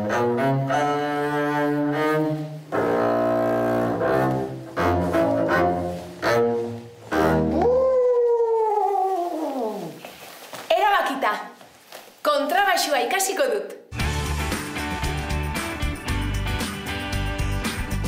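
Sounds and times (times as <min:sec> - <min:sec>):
bowed double bass notes: 0:00.0 - 0:07.9.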